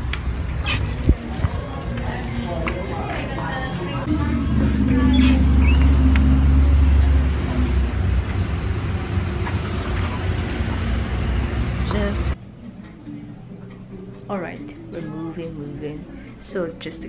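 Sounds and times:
vehicle engine rumbling: 4.0s - 12.4s.

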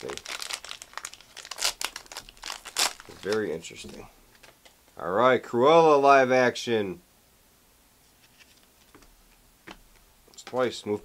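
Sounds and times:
foil wrapper crinkling and tearing: 0.0s - 4.7s.

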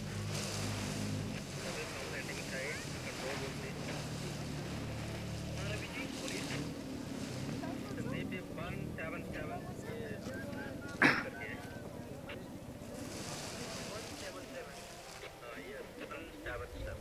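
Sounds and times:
distant voices: 0.0s - 17.0s
low engine hum: 0.0s - 17.0s
wind noise: 16.4s - 17.0s.

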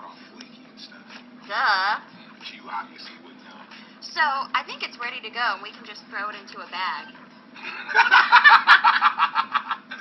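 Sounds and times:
man and woman laughing: 7.6s - 10.0s.

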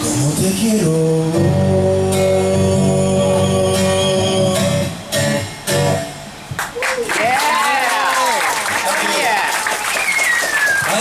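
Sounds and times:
small audience applauding: 6.6s - 11.0s.

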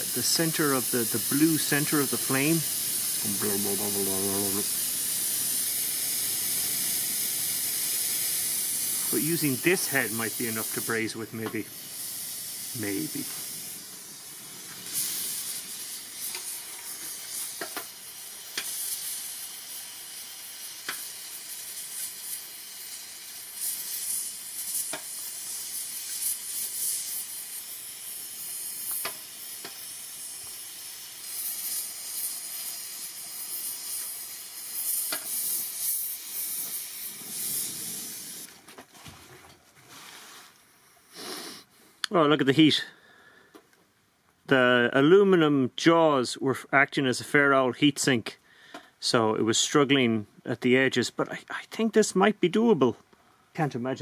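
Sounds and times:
gas torch hissing: 0.0s - 38.6s, 39.9s - 41.8s.

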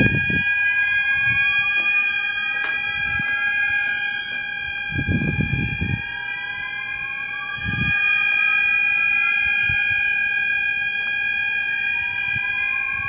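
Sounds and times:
fire alarm tone: 0.0s - 13.0s
rising siren sweep: 0.0s - 13.0s.

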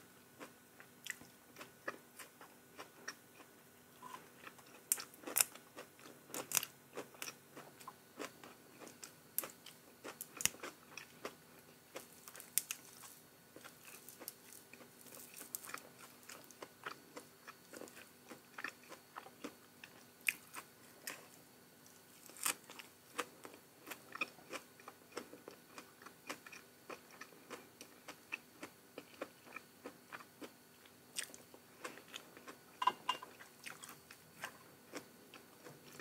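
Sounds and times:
person chewing crunchy food: 0.4s - 36.0s.

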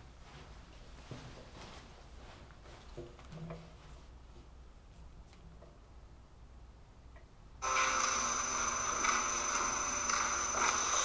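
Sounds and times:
steady low hum: 3.7s - 11.0s.

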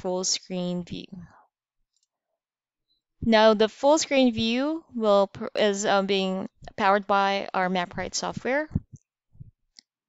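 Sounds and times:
person speaking: 0.0s - 1.3s, 3.2s - 9.0s.

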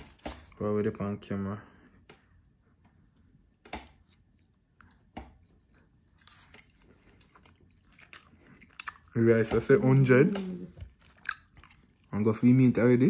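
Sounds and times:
open-mouth chewing: 4.0s - 9.2s, 9.8s - 12.2s.

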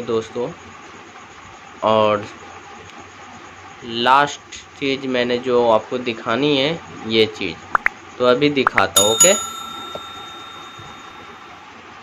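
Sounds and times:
bell ding ringing: 8.9s - 11.5s.

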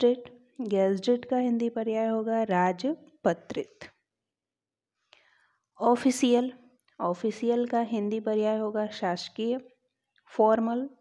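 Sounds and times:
woman speaking: 0.0s - 4.0s, 5.8s - 9.6s, 10.4s - 11.0s.

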